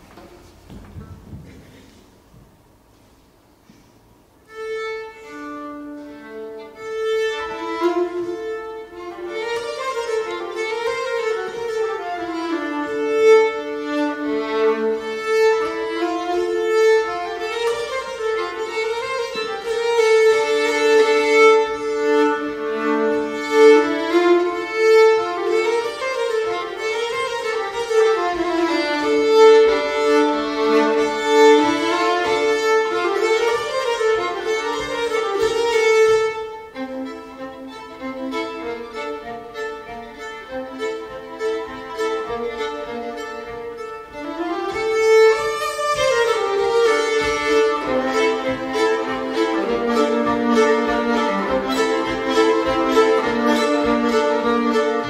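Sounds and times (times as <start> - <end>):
fiddle and accordion folk dance: 4.4 - 55.0.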